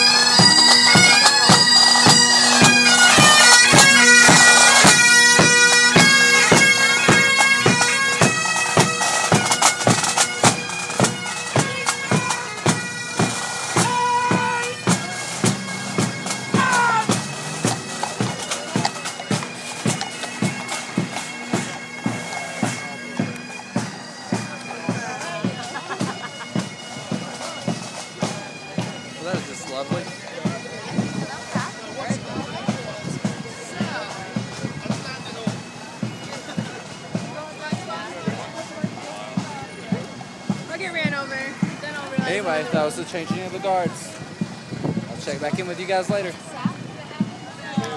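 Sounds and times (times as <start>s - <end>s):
marching drumbeat: 0.0s - 47.9s
military marching band playing: 0.0s - 47.9s.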